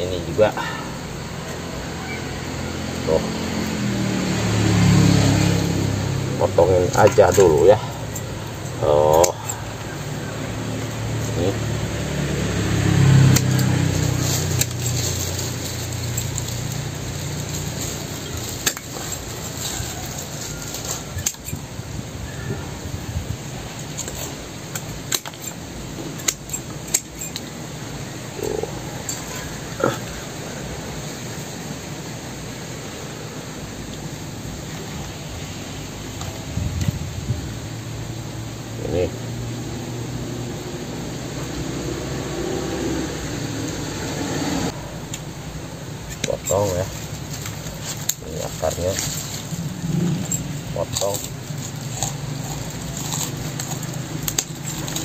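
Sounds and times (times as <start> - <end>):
twigs snapping and being cut: 12.8 - 21.6, 23.8 - 27.5, 46.1 - 55.0.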